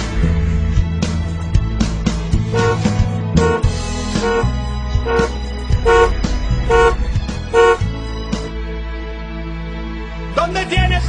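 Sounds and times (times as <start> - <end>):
background music: 0.0 - 11.0
car horn toots: 2.5 - 7.9.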